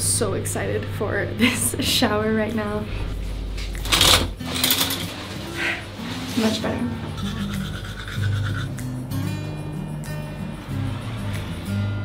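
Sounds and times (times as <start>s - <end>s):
shower curtain swishing: 3.8s - 6.8s.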